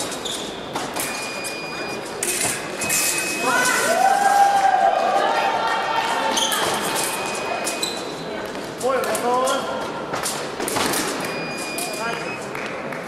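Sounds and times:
voices in echoing hall: 0:00.0 - 0:13.0.

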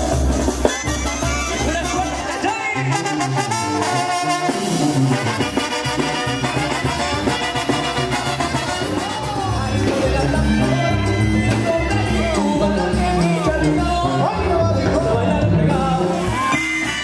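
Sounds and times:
latin brass band with trumpets: 0:00.0 - 0:17.0.

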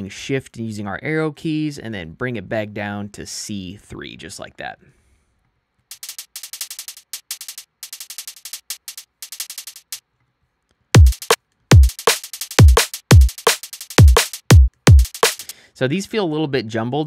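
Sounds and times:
drum and bass beat: 0:05.9 - 0:10.0, 0:11.0 - 0:15.5
rapid hi-hat ticking: 0:05.9 - 0:10.0, 0:11.0 - 0:15.5
deep kick drums: 0:11.0 - 0:12.0, 0:12.6 - 0:13.4, 0:14.0 - 0:15.2.

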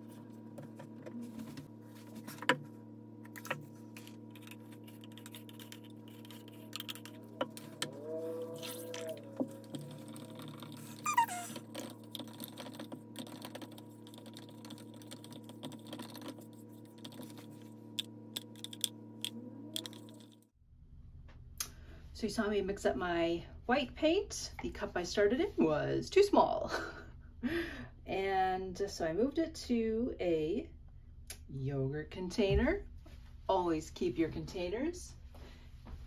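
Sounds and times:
steady hum: 0:00.0 - 0:20.5.

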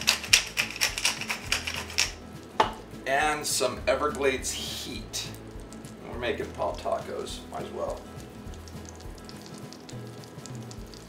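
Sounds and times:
pepper mill grinding clicks: 0:00.0 - 0:02.2.

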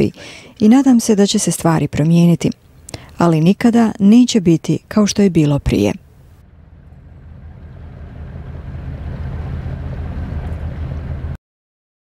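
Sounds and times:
boat engine humming: 0:00.0 - 0:11.4.

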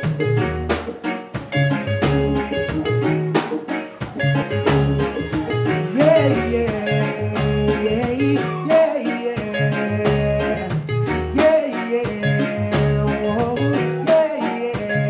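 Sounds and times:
deep bass line: 0:00.0 - 0:03.4, 0:04.0 - 0:08.7, 0:09.4 - 0:14.1, 0:14.8 - 0:15.0
reggae band playing: 0:00.0 - 0:15.0
wordless voice sliding: 0:04.4 - 0:10.8.

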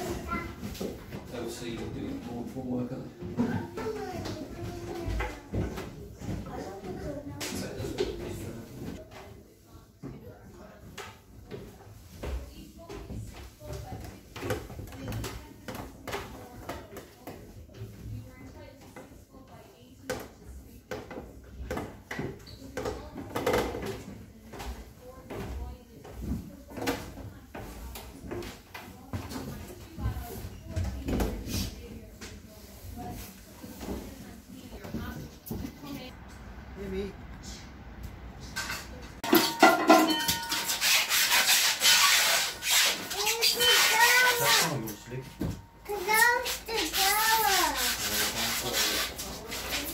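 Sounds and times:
knocks and clatter: 0:38.5 - 0:40.8
rubbing scraping noise: 0:40.4 - 0:45.3, 0:45.9 - 0:49.9.

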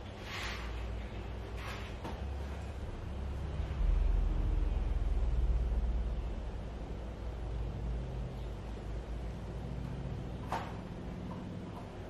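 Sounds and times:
low rumble: 0:02.2 - 0:12.0.

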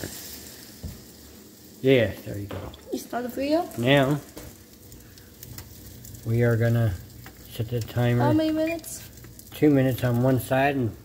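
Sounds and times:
bread sizzling in a hot pan: 0:00.0 - 0:11.0
faint crackles: 0:00.0 - 0:11.0.

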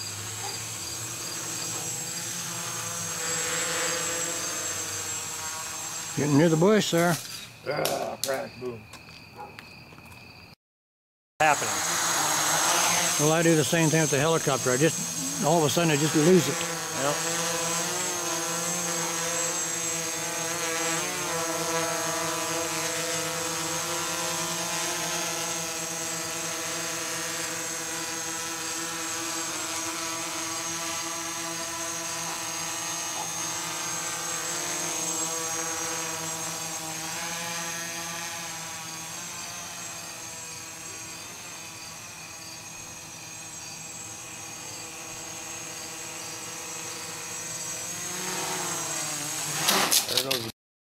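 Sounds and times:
quadcopter motors whining: 0:00.0 - 0:08.8, 0:11.4 - 0:50.5.

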